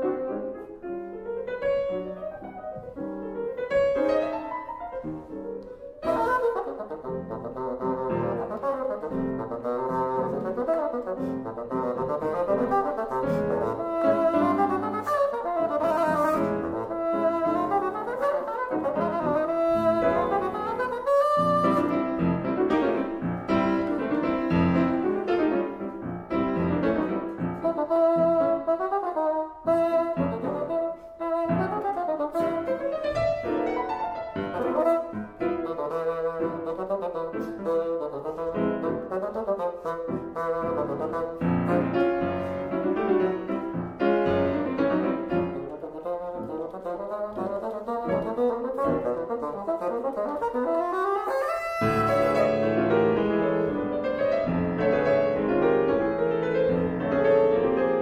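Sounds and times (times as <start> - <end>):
bassoon: 0.0 - 58.0
piano accompaniment: 0.0 - 58.0.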